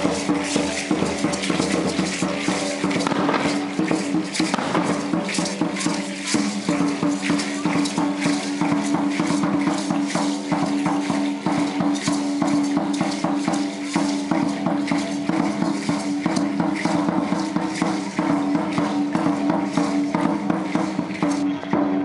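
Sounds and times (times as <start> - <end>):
rattling and clacking percussion: 0.0 - 22.0.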